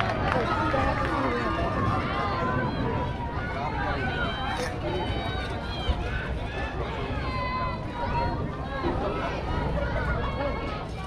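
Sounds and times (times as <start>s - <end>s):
several voices talking: 0.0s - 11.0s.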